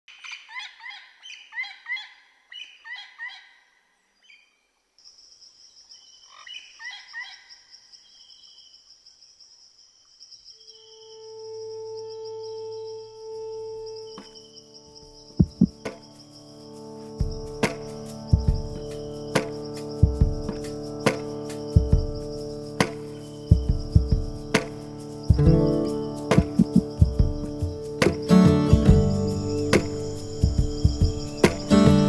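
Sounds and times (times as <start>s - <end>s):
birds chirping: 10.2s - 32.0s
sharp percussive hits: 15.4s - 16.1s, 17.2s - 32.0s
low music drone: 16.6s - 32.0s
steady high whine: 17.0s - 32.0s.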